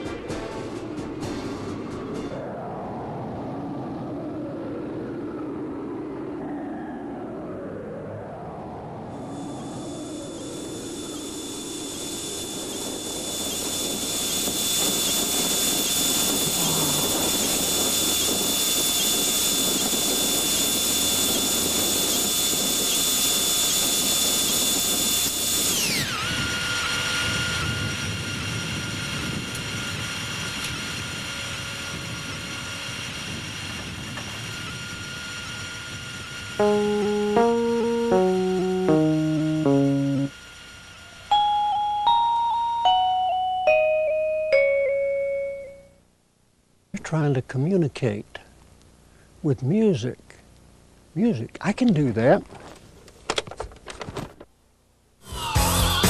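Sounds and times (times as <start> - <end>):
engine-like electronic rumble: 0.0 - 21.2, 35.5 - 42.0
high whine gliding down: 0.0 - 46.2, 55.2 - 56.0
short electronic beeping notes: 36.6 - 40.3.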